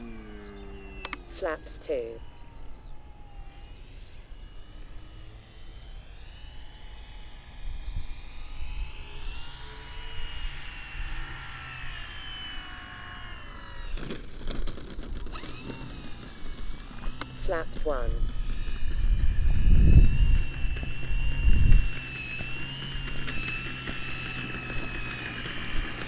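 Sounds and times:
model plane motor whining: 0.0s - 26.0s
wind rumble on microphone: 18.2s - 24.1s.

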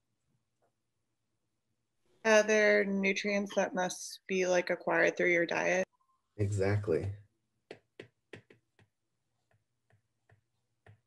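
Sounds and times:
stylus tapping on tablet screen: 7.6s - 11.0s.

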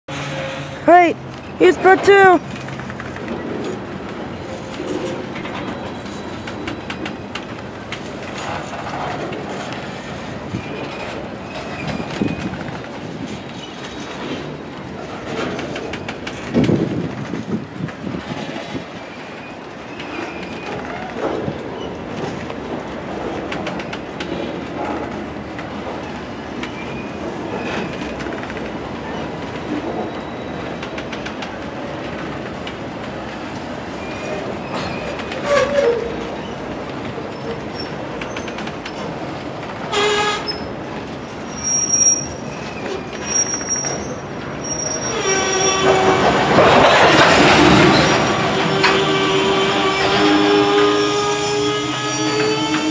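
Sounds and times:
steel wheels on rail: 0.1s - 52.9s
metallic wheel squeals: 41.5s - 46.1s, 47.9s - 52.9s.

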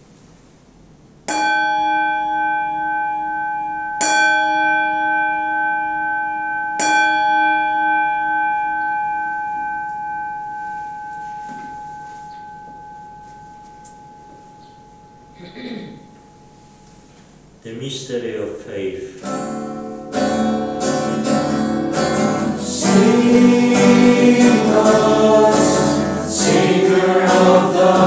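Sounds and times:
bell ringing: 1.3s - 17.1s, 19.5s - 28.0s.

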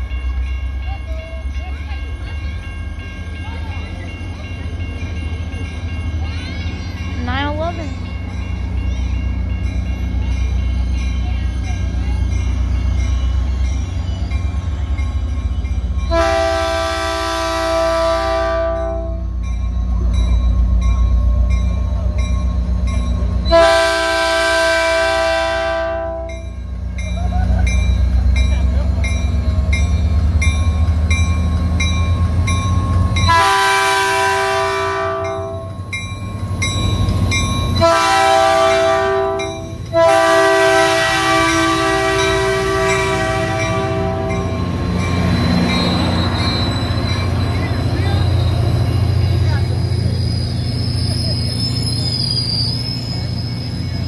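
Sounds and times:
train air horn blasts: 16.1s - 19.2s, 23.5s - 26.3s, 33.3s - 35.7s, 37.8s - 44.6s.

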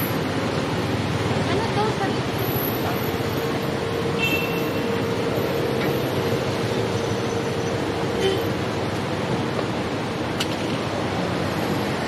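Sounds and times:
engine hum: 0.0s - 12.0s.

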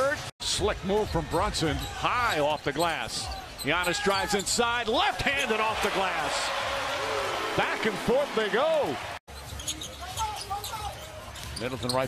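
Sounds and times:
sneaker squeaks: 1.7s - 4.8s, 9.3s - 12.0s
crowd noise: 3.2s - 9.2s.

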